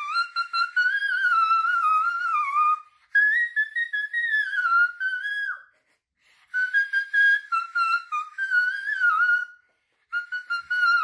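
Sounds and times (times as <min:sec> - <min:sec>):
woman singing in whistle register: 0:00.0 - 0:05.7, 0:06.6 - 0:09.6, 0:10.2 - 0:11.0.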